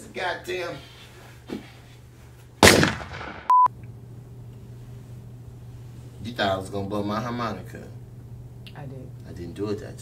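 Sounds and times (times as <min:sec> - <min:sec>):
electronic beep tone: 0:03.5 - 0:03.7.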